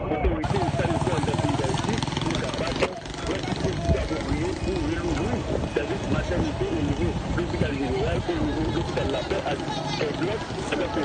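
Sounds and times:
voices of people: 0:00.0 - 0:11.0
vehicle engine running: 0:00.4 - 0:11.0.

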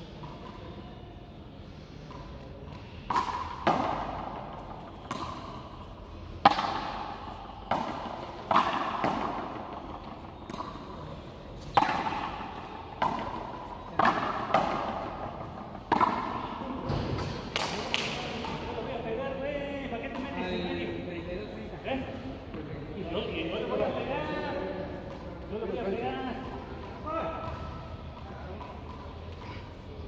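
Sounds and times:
ball hitting wall with echo: 0:02.1 - 0:18.8.

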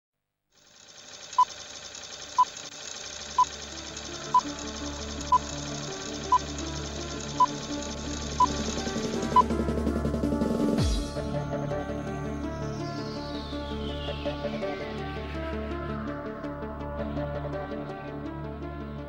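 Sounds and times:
fast fine rattle: 0:00.6 - 0:09.4
theme music: 0:03.5 - 0:19.0.

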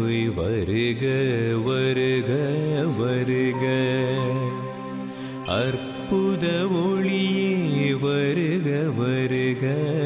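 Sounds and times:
devotional singing with accompaniment: 0:00.0 - 0:10.0.

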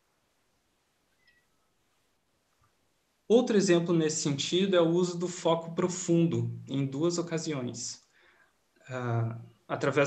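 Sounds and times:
faint high-pitched chirp: 0:01.1 - 0:01.6.

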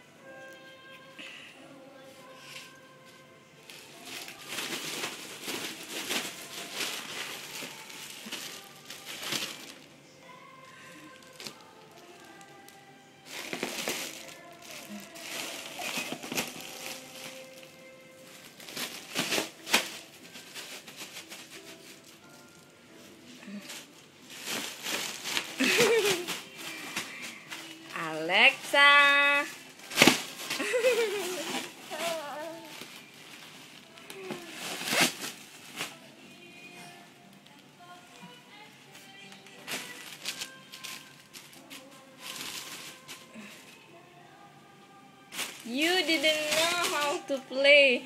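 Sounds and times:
background music: 0:00.0 - 0:48.0
foil balloon crinkling: 0:03.7 - 0:36.4, 0:37.3 - 0:43.8, 0:45.3 - 0:47.6.

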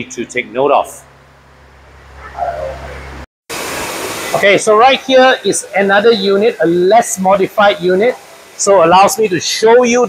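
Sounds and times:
steady rushing hiss: 0:02.4 - 0:10.0.

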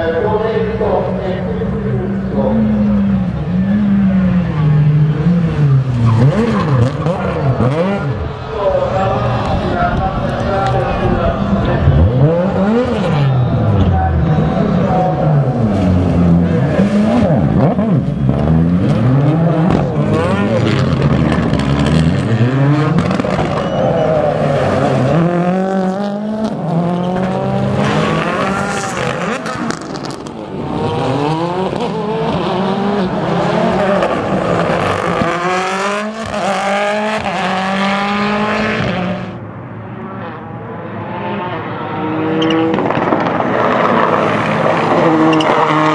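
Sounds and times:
rally car engines revving: 0:00.0 - 0:45.9.

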